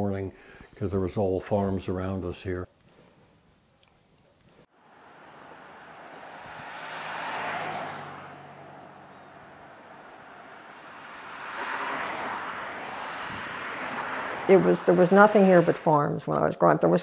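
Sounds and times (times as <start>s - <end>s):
cars passing on road: 4.6s - 16.2s.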